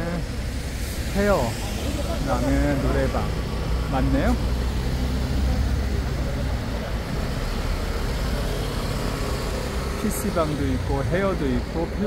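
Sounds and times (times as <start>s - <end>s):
passing cars rumbling: 0.0s - 12.0s.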